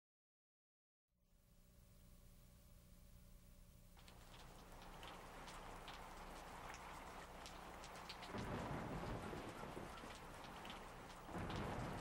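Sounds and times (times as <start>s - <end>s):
raindrop patter: 3.9s - 12.0s
rain falling: 4.0s - 12.0s
low rumbles of thunder: 8.0s - 12.0s.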